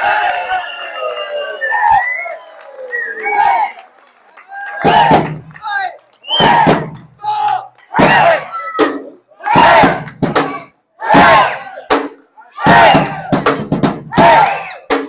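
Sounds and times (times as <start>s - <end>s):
group chanting rhythmic shouts: 4.6s - 13.5s, 14.1s - 14.9s
drum beat: 4.8s - 5.6s, 6.3s - 7.2s, 7.9s - 15.0s.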